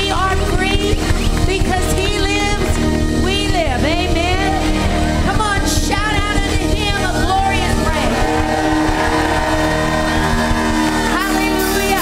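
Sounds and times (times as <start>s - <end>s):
live band holding a chord: 1.0s - 12.0s.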